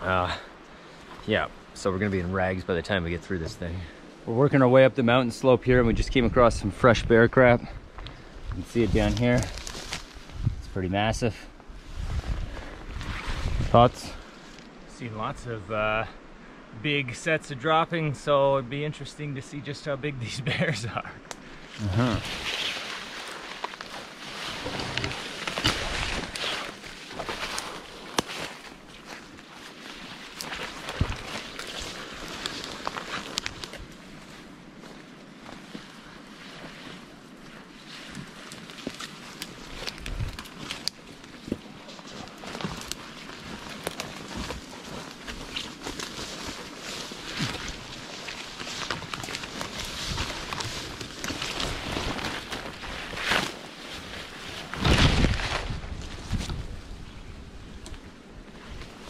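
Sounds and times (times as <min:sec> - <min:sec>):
leaves and clothing rustling: 0:00.0 - 0:59.0
footsteps through undergrowth: 0:07.4 - 0:14.8, 0:21.4 - 0:59.0
twigs snapping: 0:09.0 - 0:10.4, 0:21.2 - 0:36.0, 0:37.4 - 0:56.7.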